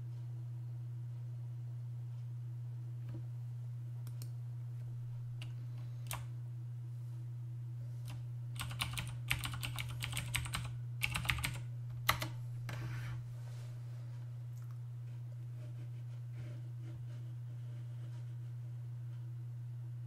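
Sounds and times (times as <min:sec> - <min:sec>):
steady low hum: 0:00.0 - 0:20.0
keyboard keystrokes: 0:08.6 - 0:12.4.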